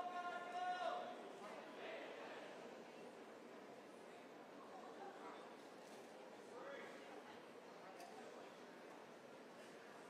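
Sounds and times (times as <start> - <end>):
murmur of large hall: 0.0 - 10.0.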